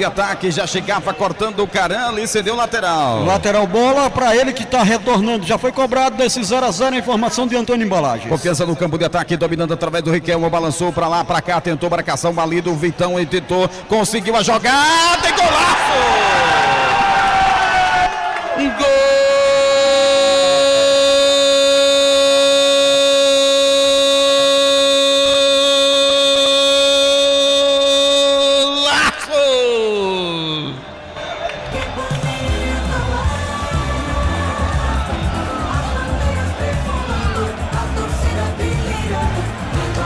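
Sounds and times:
commentators' drawn-out goal cry: 0:14.4 - 0:31.3.

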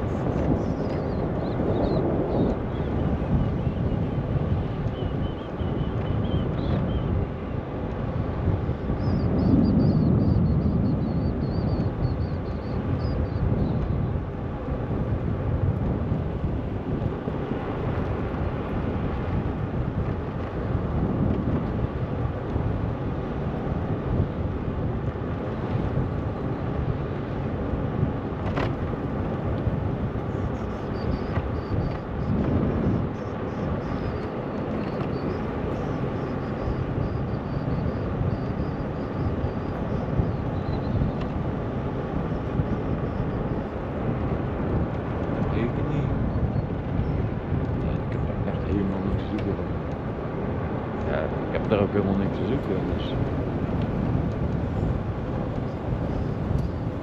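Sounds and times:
bicycle road rumble: 0:00.0 - 0:57.0
wind rushing over microphone: 0:00.0 - 0:57.0.

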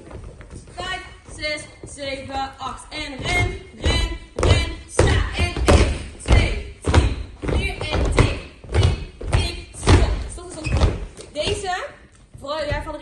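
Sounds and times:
feet thudding on dance floor: 0:03.1 - 0:11.7.

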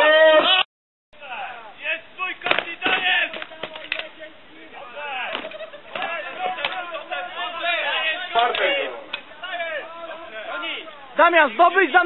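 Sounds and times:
spectators' voices: 0:01.5 - 0:12.0.

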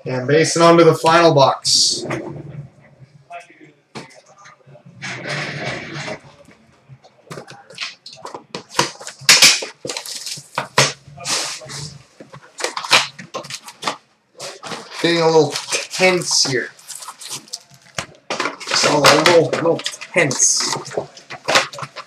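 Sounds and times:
wrapper and cardboard crinkling: 0:07.7 - 0:22.0.

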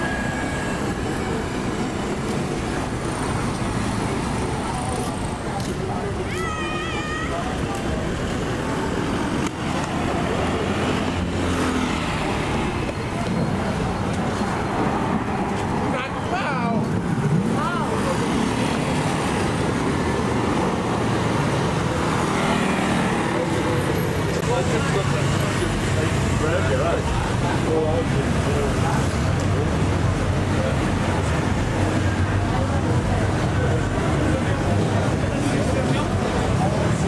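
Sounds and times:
road traffic engines humming: 0:00.0 - 0:37.0
voices of passers-by: 0:00.0 - 0:37.0.

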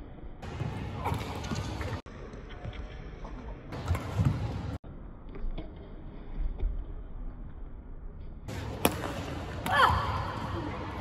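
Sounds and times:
racket hitting shuttlecock: 0:08.5 - 0:10.2.

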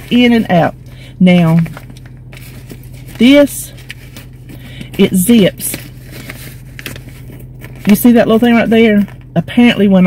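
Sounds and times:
plastic pouch rustling: 0:00.0 - 0:09.3
car engine hum: 0:00.0 - 0:10.0.

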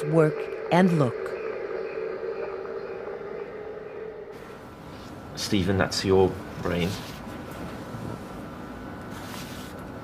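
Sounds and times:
mri scanner droning hum: 0:00.0 - 0:10.0.

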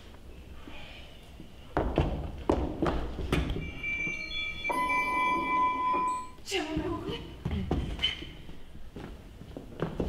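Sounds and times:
bell-like chime: 0:03.6 - 0:06.4.

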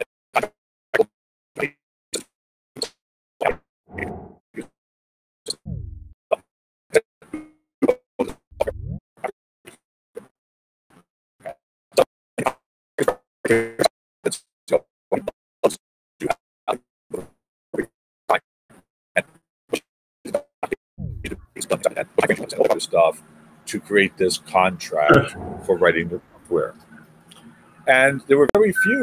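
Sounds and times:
low falling swoops: 0:03.9 - 0:04.4, 0:05.7 - 0:06.1, 0:25.1 - 0:27.1
man talking over video call: 0:21.4 - 0:26.8, 0:27.9 - 0:29.0.

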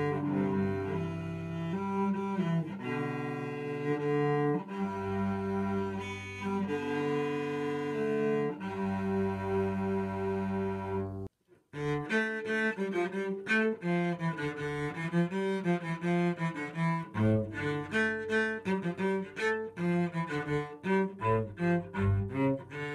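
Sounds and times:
solo cello bowed: 0:00.0 - 0:22.9.

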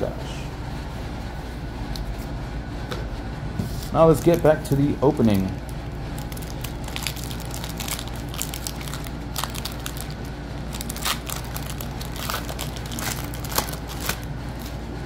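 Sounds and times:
foil wrapper crinkling and tearing: 0:04.1 - 0:14.8.

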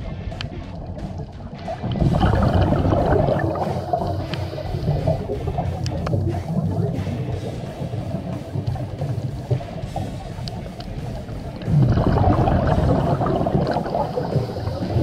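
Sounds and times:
background music with drums: 0:00.0 - 0:15.0.

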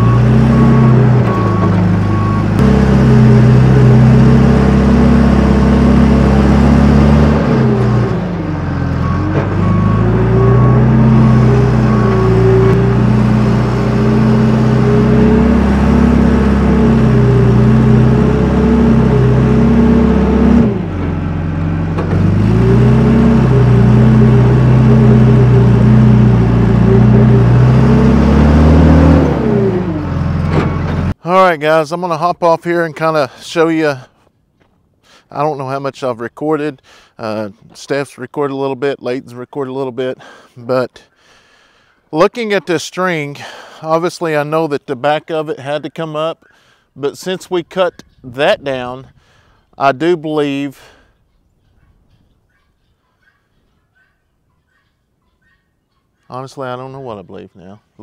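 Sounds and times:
backup alarm beeping: 0:00.0 - 0:02.6, 0:08.6 - 0:12.9
backhoe diesel engine running hard: 0:00.0 - 0:31.2.

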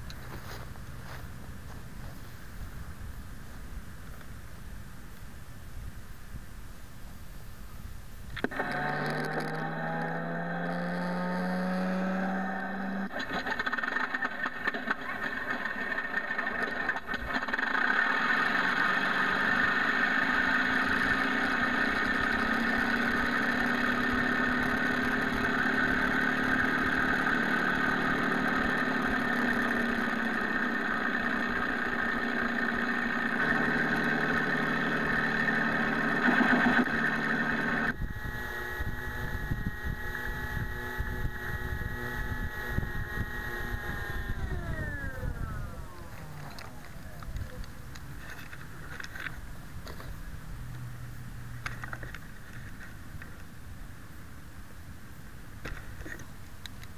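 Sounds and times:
starter whine: 0:08.2 - 0:53.8
simulated engine idling: 0:13.0 - 0:49.6.

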